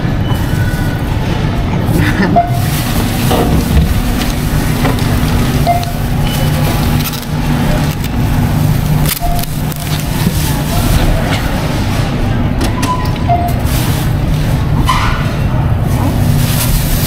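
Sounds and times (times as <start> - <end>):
steady low hum: 0.0 - 17.0
plastic bags rustling: 0.4 - 12.4, 13.5 - 14.8, 15.8 - 17.0
register beep: 5.6 - 6.6, 9.2 - 9.9, 12.8 - 13.6.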